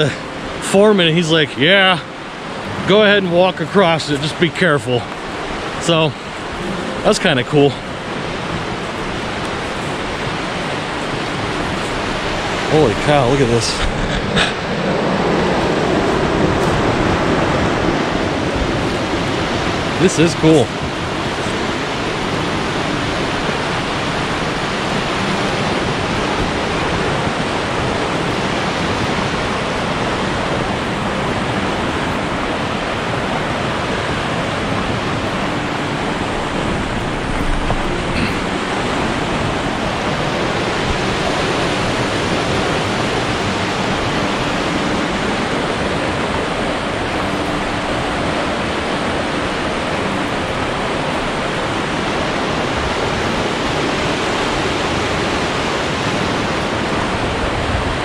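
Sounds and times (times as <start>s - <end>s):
river rushing over rocks: 0.0s - 58.0s.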